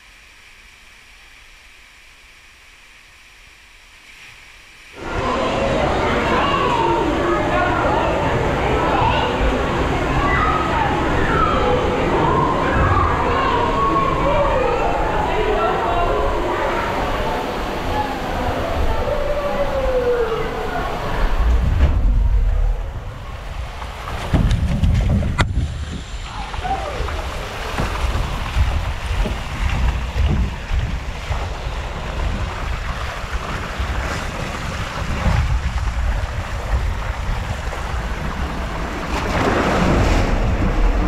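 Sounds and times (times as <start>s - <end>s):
rushing rumble in water slide tube: 4.1s - 41.0s
wind buffeting microphone: 5.0s - 41.0s.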